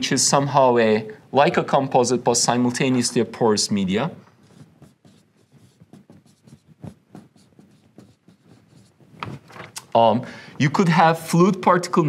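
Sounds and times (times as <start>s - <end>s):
marker writing on whiteboard: 4.1s - 9.5s.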